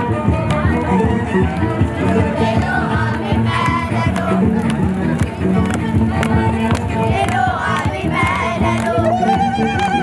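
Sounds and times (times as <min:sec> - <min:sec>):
percussive beat: 0:00.0 - 0:10.0.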